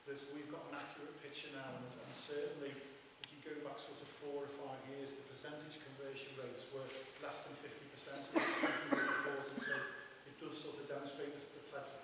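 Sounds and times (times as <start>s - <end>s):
people talking: 0.0s - 12.0s
person coughing: 8.3s - 10.0s.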